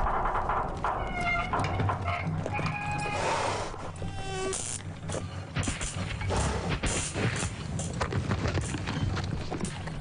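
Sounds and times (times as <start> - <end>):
creaking squealing metal windmill wheel: 0.8 - 5.5.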